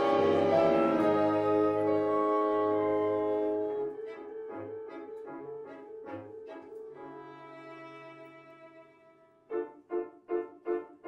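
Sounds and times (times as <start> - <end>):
chamber ensemble playing: 0.0 - 8.2.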